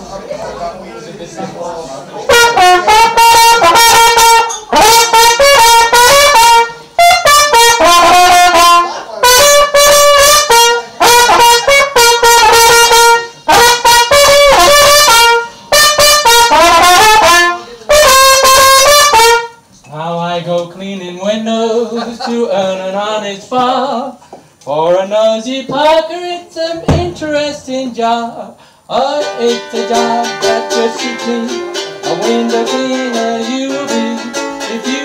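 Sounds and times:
trumpet melody: 0:02.3 - 0:19.7, 0:29.2 - 0:35.0.

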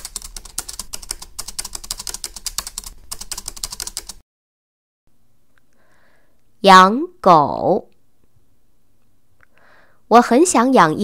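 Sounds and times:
rapid typing on keyboard: 0:00.0 - 0:04.2.

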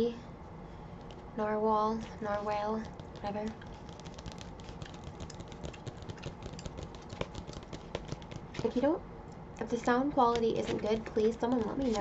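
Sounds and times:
steady low hum: 0:00.0 - 0:12.0
fingernails tapping on book cover: 0:02.2 - 0:08.8.

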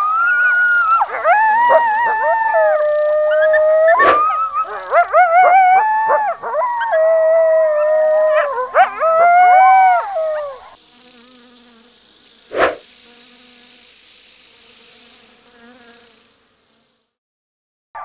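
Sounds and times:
cartoon werewolf howling: 0:00.0 - 0:10.8.

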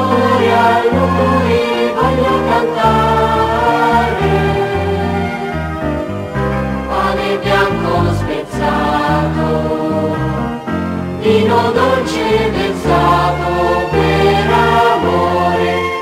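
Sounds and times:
choir singing a hymn: 0:00.0 - 0:16.0
instrumental accompaniment with bass: 0:00.0 - 0:16.0.

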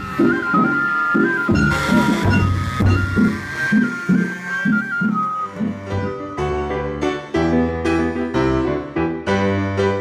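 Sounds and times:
whistle-like melody: 0:00.0 - 0:07.2
low plucked string notes: 0:01.4 - 0:08.0.

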